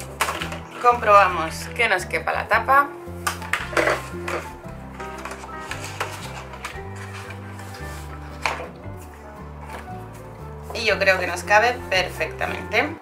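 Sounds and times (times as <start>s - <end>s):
card knocking and rustling: 0.0s - 0.8s, 3.2s - 10.0s
background music with stepping bass: 0.0s - 13.0s
album sliding into cover: 3.4s - 10.8s.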